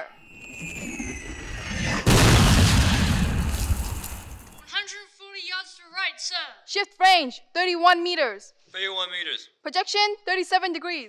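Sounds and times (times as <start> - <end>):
artillery boom: 0.3 - 4.6.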